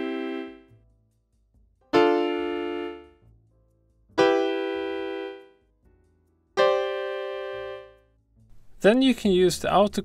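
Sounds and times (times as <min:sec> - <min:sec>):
piano chords: 0:00.0 - 0:00.7, 0:01.9 - 0:03.2, 0:04.1 - 0:05.6, 0:06.6 - 0:08.0.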